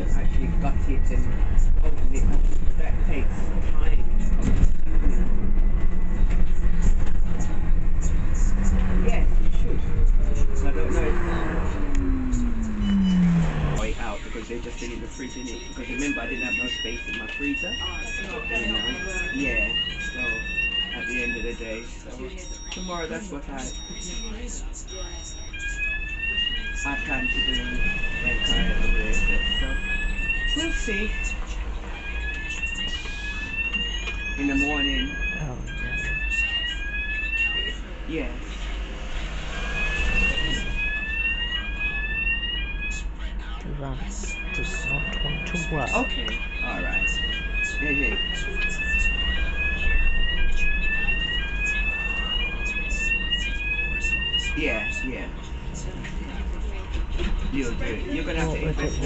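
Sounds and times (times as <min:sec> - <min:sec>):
electronic warning beeper chirping: 0:10.3 - 0:31.4, 0:32.0 - 0:37.8, 0:44.3 - 0:55.8, 0:57.6 - 0:59.0.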